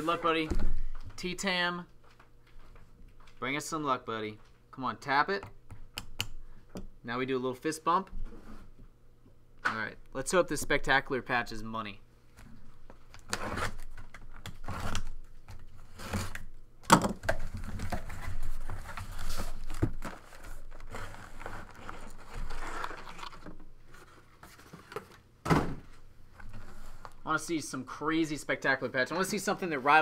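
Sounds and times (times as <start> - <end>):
cardboard tearing and crinkling: 17.6 - 23.5.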